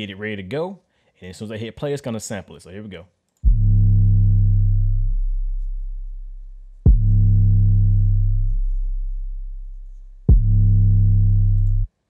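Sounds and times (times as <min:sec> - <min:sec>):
distorted bass note booming: 0:03.5 - 0:11.9.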